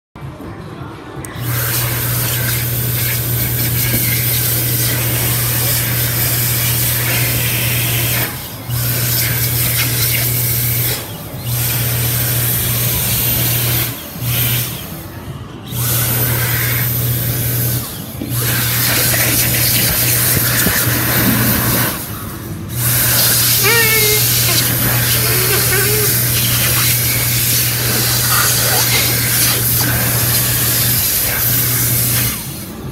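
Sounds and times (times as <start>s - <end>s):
hand dryer blowing air: 1.3s - 14.9s, 15.7s - 32.9s.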